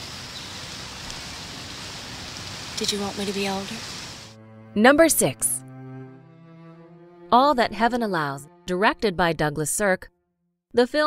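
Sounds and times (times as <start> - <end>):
soft outdoor ambience hiss: 0.0 - 5.3.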